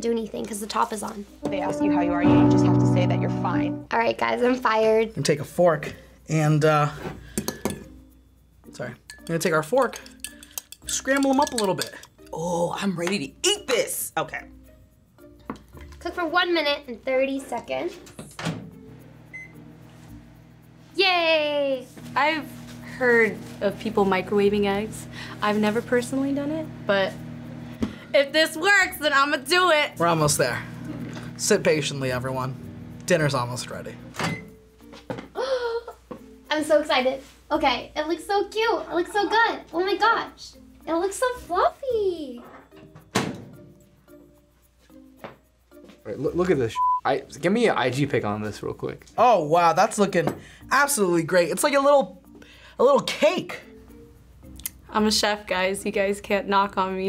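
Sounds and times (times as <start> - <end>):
quiet background music: 0.0 - 57.0
microwave keypad beep: 19.3 - 19.6, 46.8 - 47.0
microwave oven humming: 22.0 - 28.1, 30.0 - 34.5.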